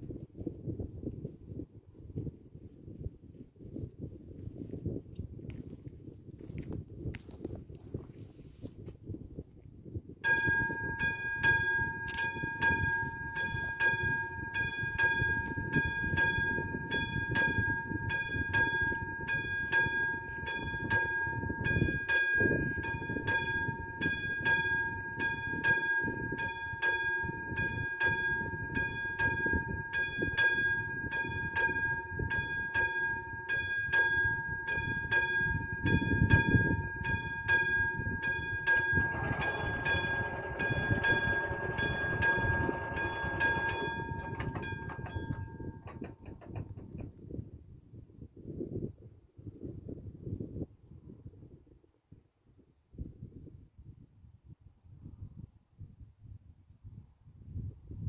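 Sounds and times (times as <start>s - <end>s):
steady high tone: 10.3s - 46.2s
level crossing bell ringing: 10.3s - 46.6s
crossing barriers whirring: 35.6s - 46.6s.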